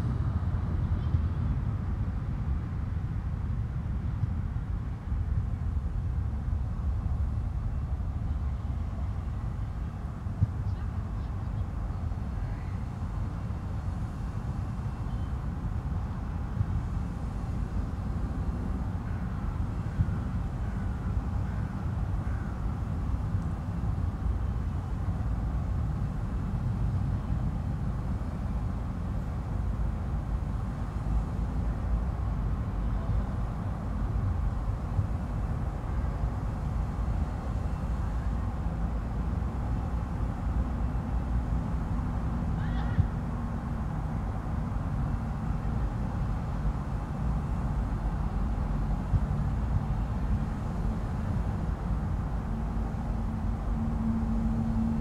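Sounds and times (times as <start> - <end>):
low background rumble: 0.0 - 55.0.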